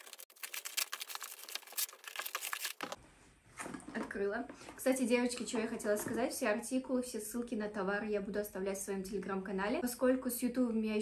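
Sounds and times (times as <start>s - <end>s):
plastic wrap and tape crinkling: 0.0s - 3.0s.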